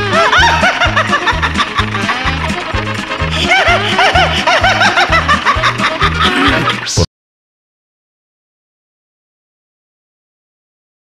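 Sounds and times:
bouncy music with bass line: 0.0s - 7.1s
high-pitched cartoonish laughter: 0.0s - 7.1s.

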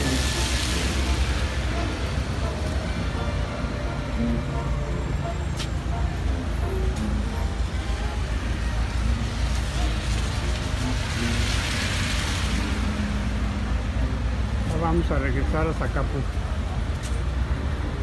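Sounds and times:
car engines rumbling: 0.0s - 18.0s
faint music: 0.0s - 18.0s
traffic hiss: 0.0s - 18.0s.

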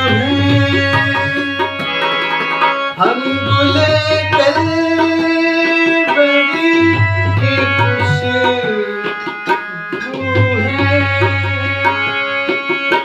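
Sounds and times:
harmonium playing chords and melody: 0.0s - 13.0s
tabla rhythm: 0.0s - 13.0s.

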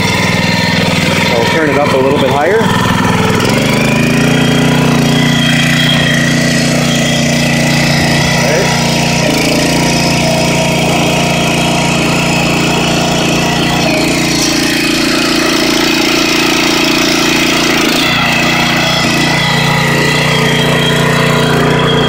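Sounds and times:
small engine running: 0.0s - 22.0s.

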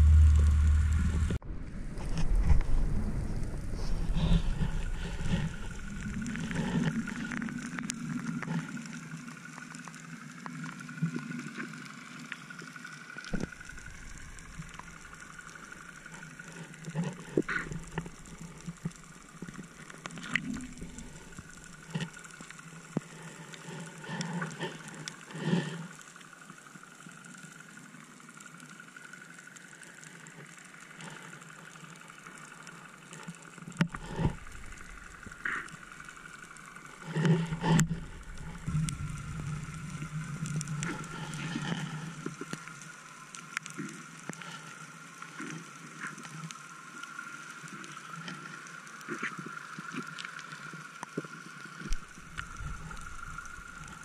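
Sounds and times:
distant boat motor whine underwater: 0.0s - 54.0s.

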